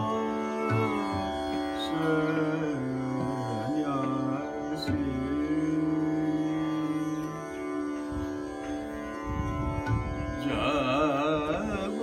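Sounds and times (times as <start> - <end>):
man singing long note: 0.0 - 8.0, 10.4 - 12.0
tanpura drone: 0.0 - 12.0.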